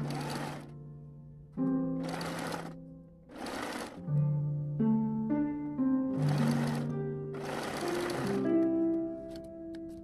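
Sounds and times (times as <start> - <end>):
electric sewing machine stitching: 0.0 - 0.7, 2.0 - 4.0, 6.2 - 8.6.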